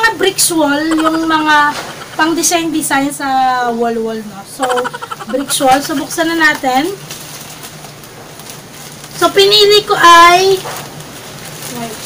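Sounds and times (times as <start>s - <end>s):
plastic bag rustling: 4.7s - 12.0s.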